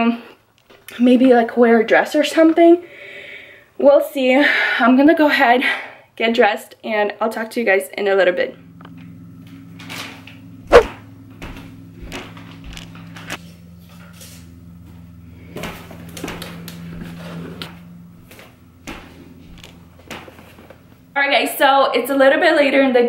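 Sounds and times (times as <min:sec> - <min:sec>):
steady low hum: 0:08.5 - 0:23.0.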